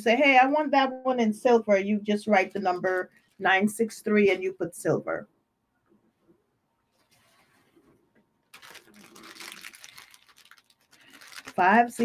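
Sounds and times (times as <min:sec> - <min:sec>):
plastic packaging crinkling: 0:08.4 - 0:12.0.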